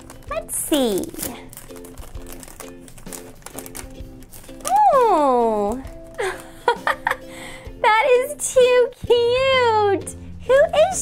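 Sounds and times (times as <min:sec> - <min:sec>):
foil bag crinkling and tearing: 0:00.0 - 0:07.0
background music: 0:00.0 - 0:11.0.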